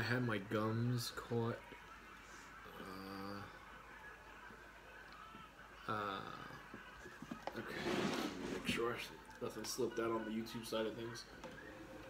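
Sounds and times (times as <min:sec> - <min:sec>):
low voice hum: 0:02.7 - 0:08.8.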